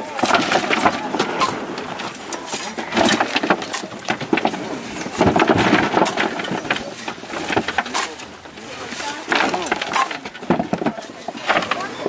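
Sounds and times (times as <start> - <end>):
dirt falling with dull thuds: 0.0 - 12.0
shovels scraping soil: 0.0 - 12.0.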